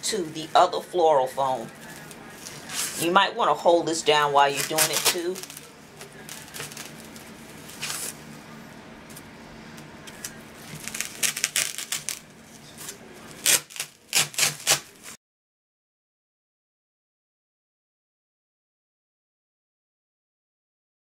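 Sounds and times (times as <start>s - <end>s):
pipe crunching through floral foam: 4.5s - 8.2s, 10.1s - 15.2s.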